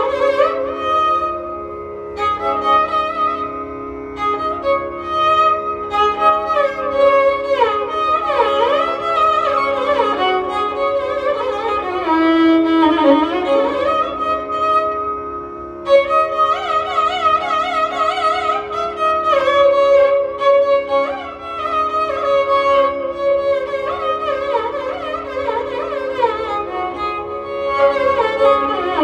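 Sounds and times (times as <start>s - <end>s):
tanpura drone: 0.0s - 29.0s
violin solo with sliding ornaments: 0.0s - 29.0s.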